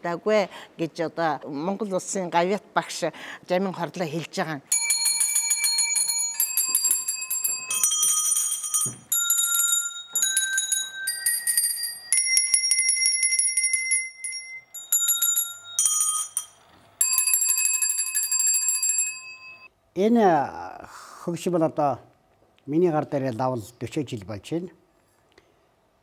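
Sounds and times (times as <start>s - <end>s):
handbells ringing: 4.7s - 19.7s.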